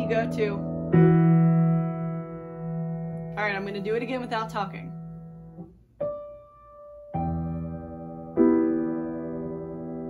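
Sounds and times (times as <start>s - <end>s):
piano chord ringing: 0.0s - 10.0s
person speaking: 3.3s - 5.0s.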